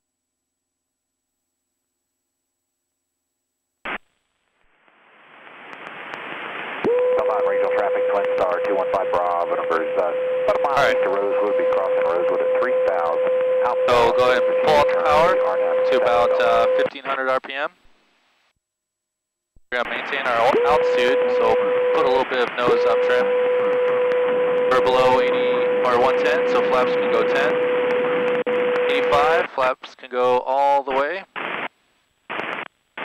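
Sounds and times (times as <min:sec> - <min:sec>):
radio hiss: 0:04.9 - 0:17.8, 0:19.7 - 0:23.8, 0:24.7 - 0:31.7, 0:32.3 - 0:33.0
radio voice transmission: 0:06.8 - 0:17.7, 0:19.7 - 0:23.3, 0:24.7 - 0:27.6, 0:28.8 - 0:31.5
steady radio tone: 0:06.8 - 0:17.8, 0:19.7 - 0:31.7
radio click: 0:32.3 - 0:33.0.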